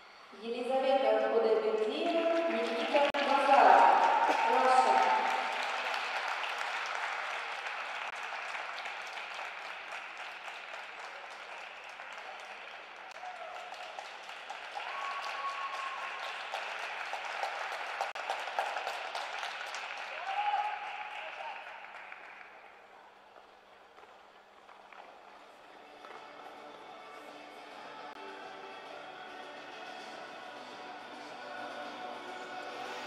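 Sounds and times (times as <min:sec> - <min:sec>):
audience applauding: 0:01.9 - 0:23.2
people cheering: 0:02.4 - 0:22.6.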